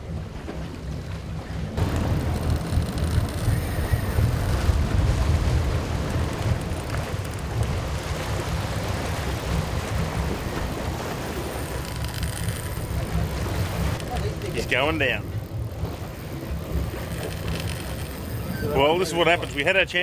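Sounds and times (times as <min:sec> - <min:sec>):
wind buffeting microphone: 0:00.0 - 0:19.3
boat engine: 0:00.0 - 0:20.0
sea: 0:00.0 - 0:20.0.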